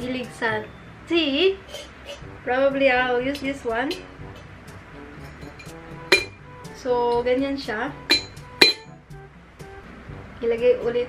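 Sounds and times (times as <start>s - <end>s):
quiet background music: 0.0s - 11.0s
ceramic teapot lid clinks: 5.4s - 6.4s, 8.1s - 8.9s.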